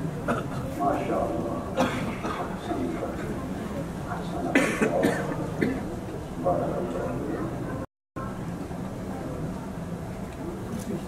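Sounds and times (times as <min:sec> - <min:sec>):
murmur of voices: 0:00.0 - 0:11.0
person coughing: 0:01.8 - 0:02.5, 0:04.5 - 0:05.9.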